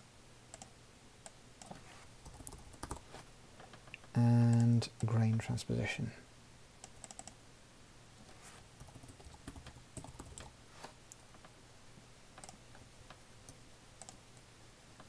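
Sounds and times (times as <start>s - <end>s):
faint low steady hum: 0.0s - 15.0s
computer keyboard typing: 1.6s - 3.0s, 6.8s - 7.4s, 8.8s - 10.5s, 12.4s - 12.6s, 14.0s - 14.2s.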